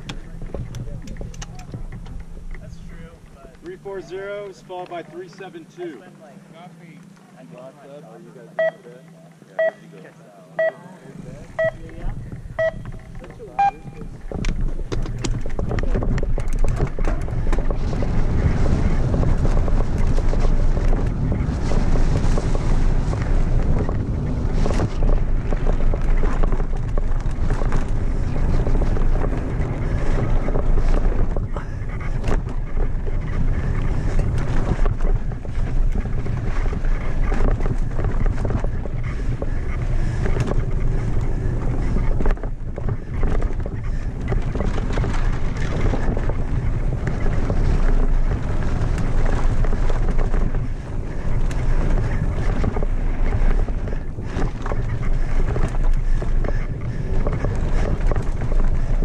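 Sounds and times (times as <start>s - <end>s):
bike rattles and knocks: 0.0s - 4.4s, 11.6s - 59.0s
wind rushing over microphone: 11.1s - 59.0s
tyres rolling over dirt and rocks: 11.9s - 59.0s.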